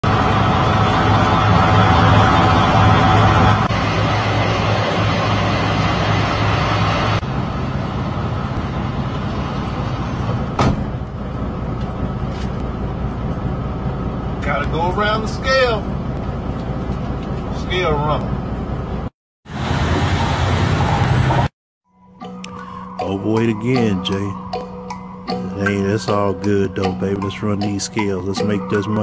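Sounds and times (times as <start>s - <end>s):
diesel truck engine idling: 0.0s - 21.3s.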